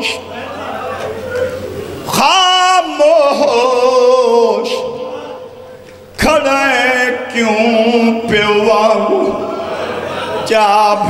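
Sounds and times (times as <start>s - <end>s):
man chanting through microphones: 0.0s - 0.5s, 2.1s - 9.7s, 10.4s - 11.0s.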